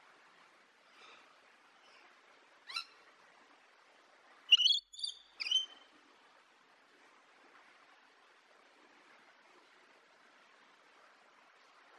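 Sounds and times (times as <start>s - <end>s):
parrot shrill chirps: 4.5s - 5.8s.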